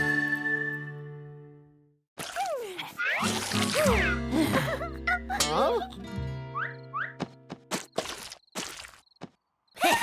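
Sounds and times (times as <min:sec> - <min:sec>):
cartoon characters laughing: 0:03.0 - 0:06.0, 0:09.8 - 0:10.0.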